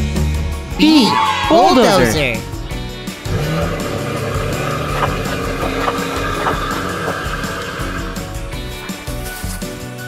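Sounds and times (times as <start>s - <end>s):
background music: 0.0s - 10.0s
toy bulldozer motor hum: 3.7s - 8.2s.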